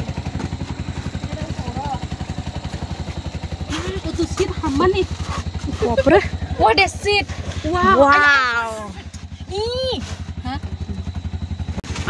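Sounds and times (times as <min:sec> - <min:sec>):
auto-rickshaw engine chugging: 0:00.0 - 0:12.0.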